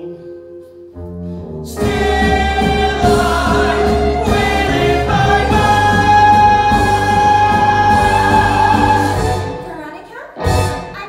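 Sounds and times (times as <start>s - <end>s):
band and cast singing: 1.8s - 9.7s.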